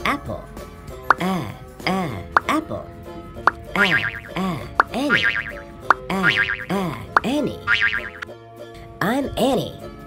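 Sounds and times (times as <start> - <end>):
children's song with music: 0.0 - 10.0.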